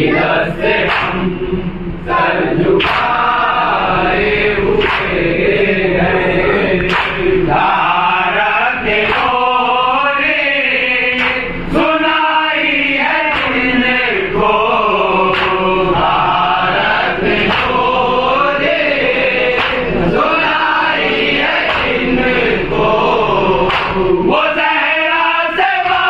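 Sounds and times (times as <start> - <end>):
men chanting in unison: 0.0 - 26.0.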